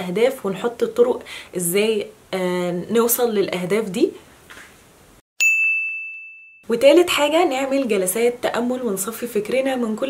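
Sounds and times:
bell-like ding: 5.4s - 6.7s.

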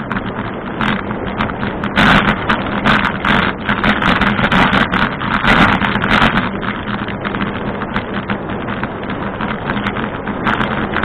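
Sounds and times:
rattle of small clicks: 0.0s - 11.0s
steady low hum: 0.0s - 11.0s
tyre and wind noise: 0.0s - 11.0s.

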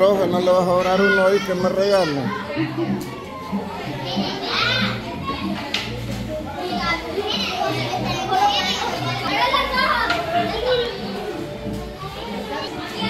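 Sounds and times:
children chattering and calling: 0.0s - 13.0s.

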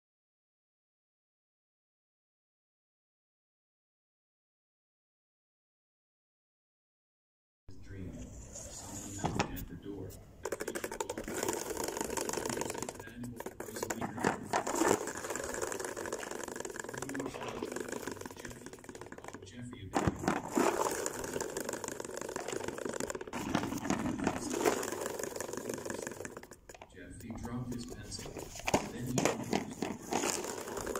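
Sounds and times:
salad spinner banging: 10.4s - 30.9s
salad spinner rattling: 10.4s - 30.9s.

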